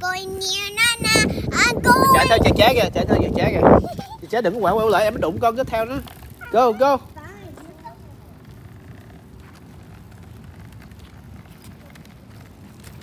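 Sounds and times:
child's high voice: 0.0 - 2.5, 6.4 - 8.2.

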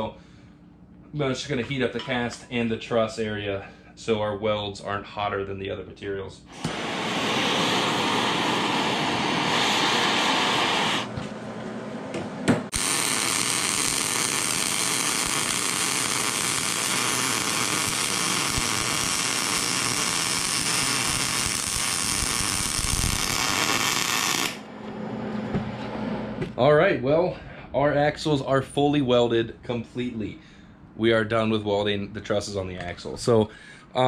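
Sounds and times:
gas torch flame hissing: 6.5 - 11.1, 12.7 - 24.7.

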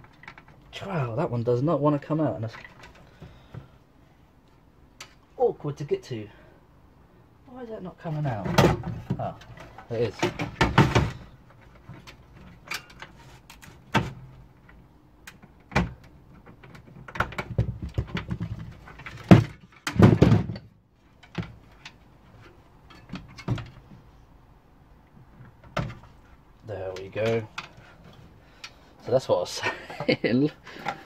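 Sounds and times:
metal clanks and knocks: 8.3 - 13.2, 15.4 - 24.0.

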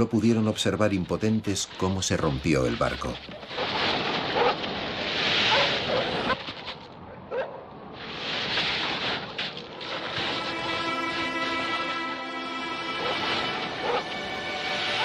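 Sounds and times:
background music held chord: 10.2 - 15.0.

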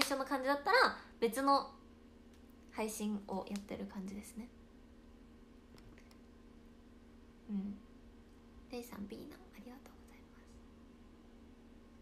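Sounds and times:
woman whispering: 9.2 - 10.6.

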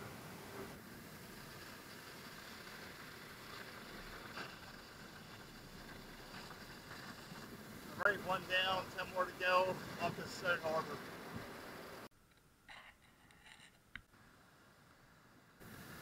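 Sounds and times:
ocean surf breaking: 0.0 - 12.1.

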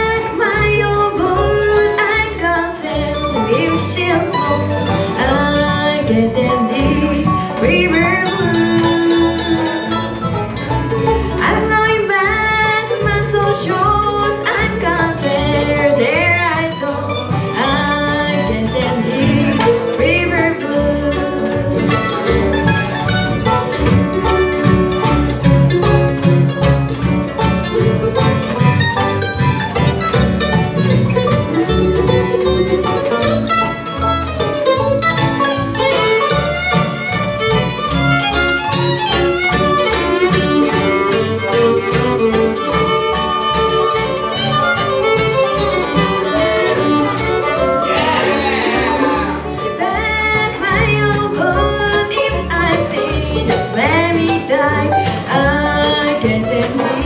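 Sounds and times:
bluegrass band playing: 0.0 - 57.0.

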